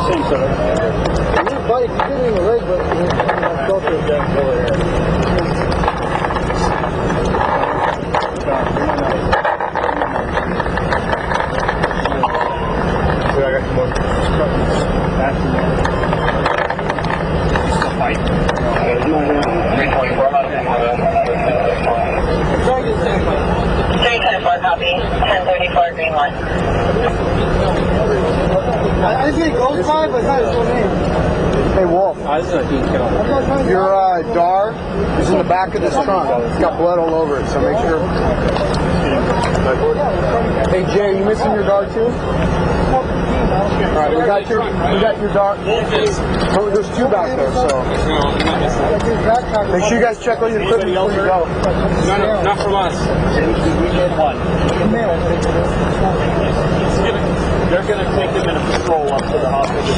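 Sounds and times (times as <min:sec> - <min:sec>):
muffled voices talking: 0:00.0 - 0:59.9
steady low rumble: 0:00.0 - 0:59.9.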